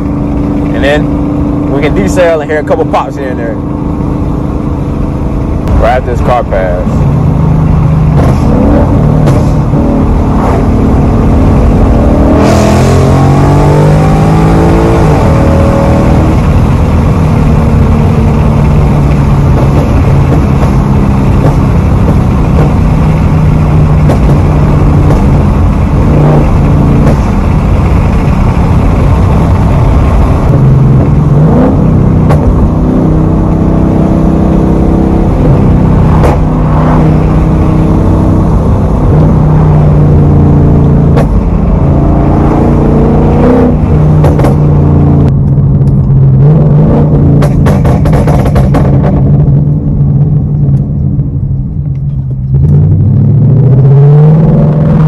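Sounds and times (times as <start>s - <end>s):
car engine accelerating: 0.0s - 55.0s
exhaust pops: 8.0s - 11.1s, 16.1s - 33.0s, 35.3s - 37.7s, 40.8s - 42.0s, 43.6s - 46.3s, 47.0s - 53.0s.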